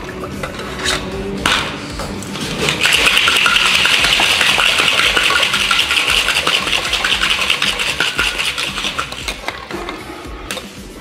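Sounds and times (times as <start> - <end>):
ice rattling in cocktail shaker: 2.6 - 9.8.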